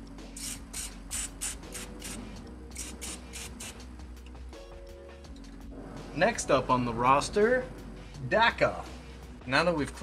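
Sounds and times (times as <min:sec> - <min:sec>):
spray can hissing bursts: 0:00.4 - 0:03.9.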